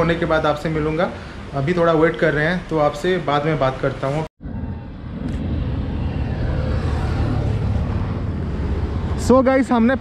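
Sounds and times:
road noise: 0.0 - 10.0
vehicle engine rumble: 4.4 - 10.0.

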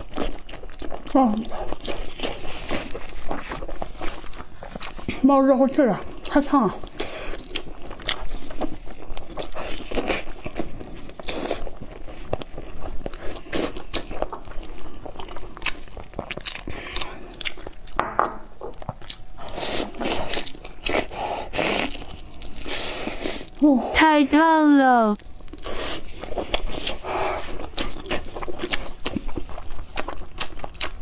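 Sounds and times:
person chewing: 0.0 - 5.2, 6.0 - 23.6, 25.2 - 31.0.

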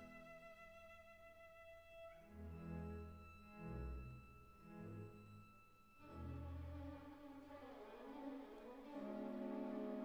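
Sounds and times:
orchestral string music: 0.0 - 10.0.

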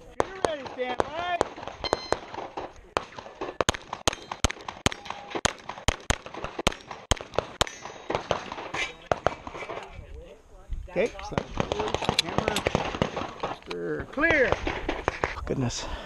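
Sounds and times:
pistol shots: 0.0 - 9.8, 11.3 - 13.6.

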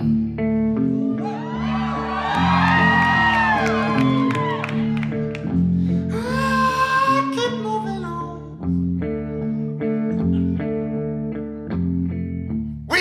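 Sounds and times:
guitar chords strummed: 0.0 - 13.0.

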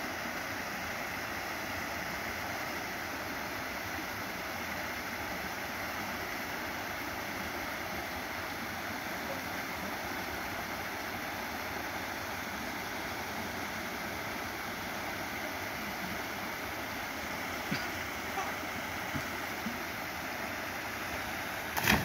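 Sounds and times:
small waterfall over rock: 0.0 - 22.0.

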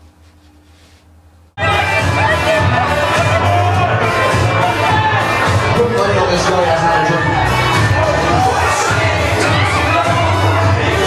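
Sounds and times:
crowd shouting and cheering: 1.6 - 11.0
loud music with low bass: 1.6 - 11.0.

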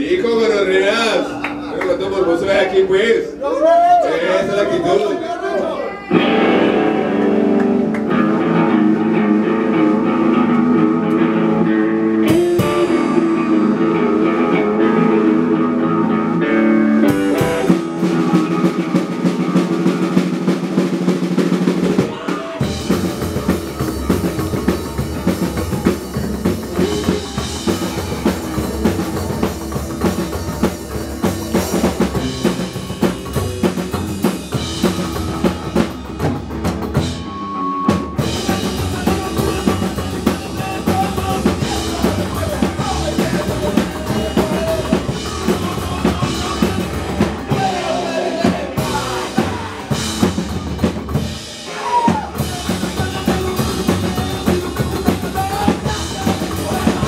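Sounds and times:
guitar chords ringing: 6.1 - 19.9
upright bass: 6.1 - 51.6, 52.2 - 57.0
drum kit hits: 12.3 - 13.5, 17.0 - 37.3.

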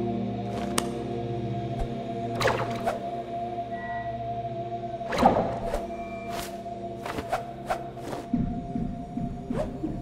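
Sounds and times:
droning ambient music: 0.0 - 10.0.

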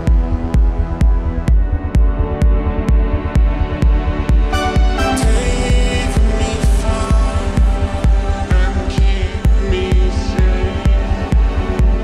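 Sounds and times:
kick drum: 0.0 - 12.0
melodic techno music: 0.0 - 12.0
sustained synth chords: 0.0 - 12.0
throbbing bassline: 0.0 - 12.0.

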